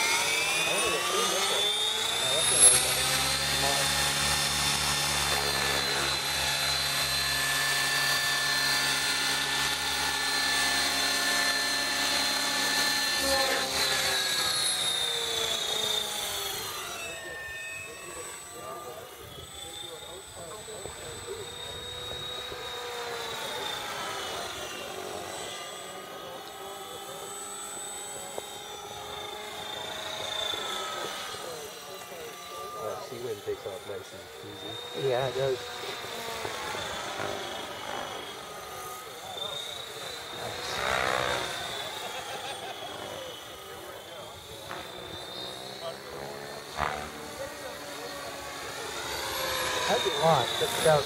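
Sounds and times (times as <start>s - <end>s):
rc helicopter rotor whine: 0.0s - 51.0s.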